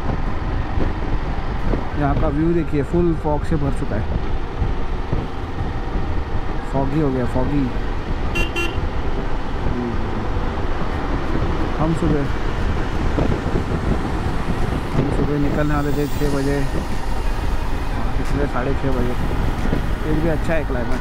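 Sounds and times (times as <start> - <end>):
motorcycle engine and road noise: 0.0 - 21.0
wind rush: 0.0 - 21.0
vehicle horn toot: 8.3 - 8.9.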